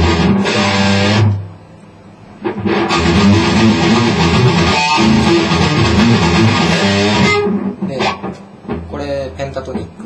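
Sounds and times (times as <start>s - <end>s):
electric guitar playing: 0.0s - 1.6s, 2.4s - 8.9s.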